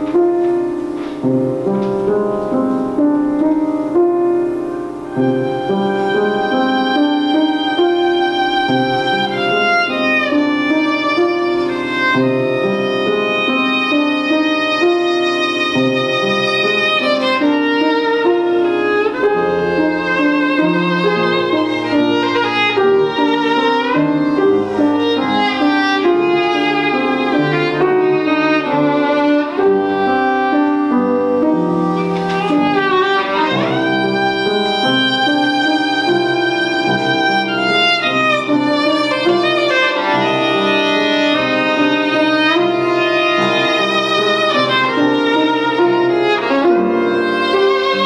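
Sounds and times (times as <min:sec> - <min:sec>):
violin melody: 0:00.0 - 0:48.0.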